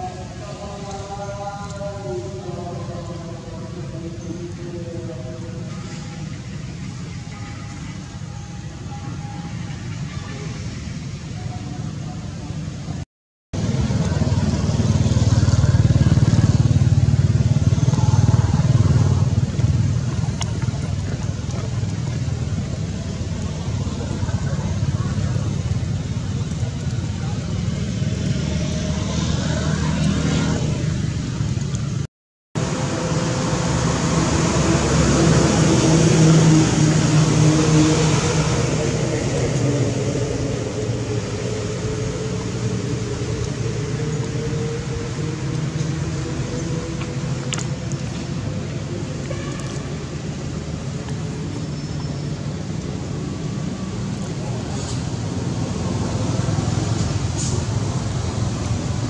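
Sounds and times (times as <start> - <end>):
low traffic rumble: 0.0 - 59.0
faint voices: 17.4 - 31.2.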